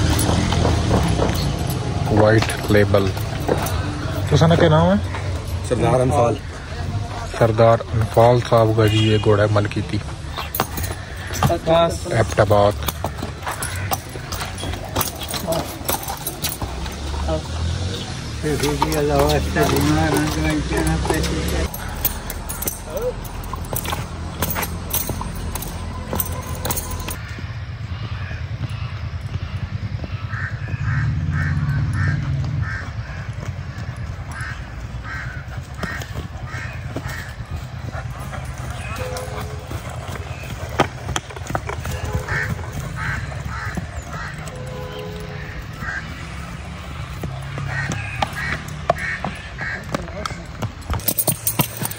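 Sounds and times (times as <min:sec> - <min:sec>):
bridle chains jingling: 0:00.0 - 0:27.4, 0:31.3 - 0:51.9
horse hooves prancing: 0:00.0 - 0:51.9.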